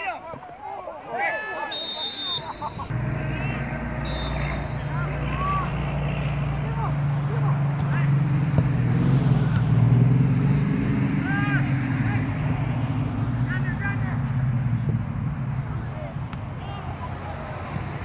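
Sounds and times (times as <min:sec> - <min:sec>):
distant shouts: 0:00.0 - 0:09.8, 0:10.9 - 0:14.4, 0:15.7 - 0:18.0
low motor hum: 0:02.9 - 0:10.5.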